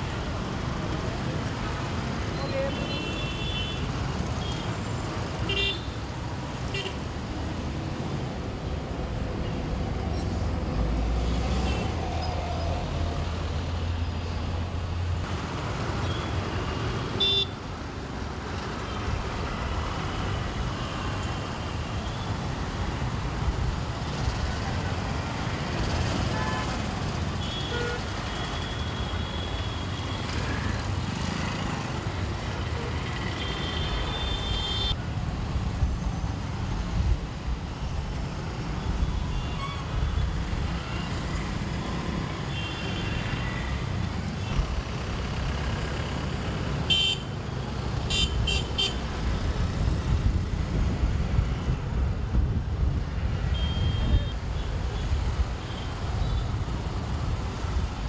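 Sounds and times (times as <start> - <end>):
traffic engines rumbling: 0.0 - 58.0.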